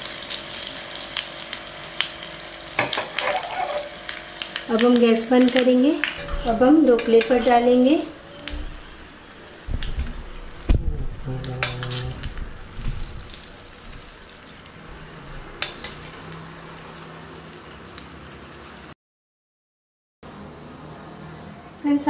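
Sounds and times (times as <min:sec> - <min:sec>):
hot oil sizzling: 0:00.0 - 0:19.0.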